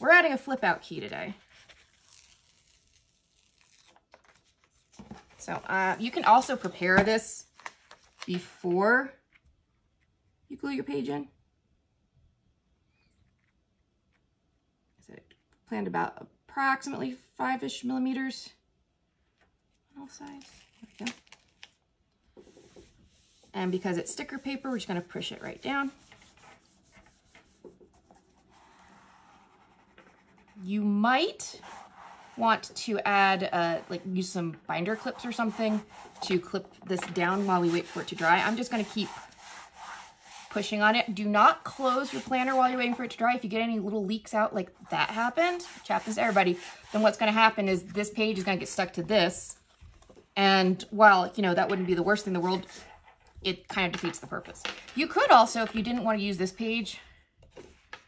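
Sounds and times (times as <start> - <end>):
hands rubbing paper: 22.4 - 30.6, 31.4 - 43.2, 45.0 - 48.3.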